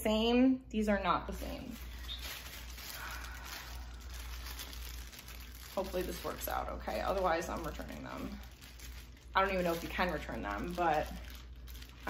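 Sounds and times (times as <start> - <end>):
low hum: 0.9 - 12.0.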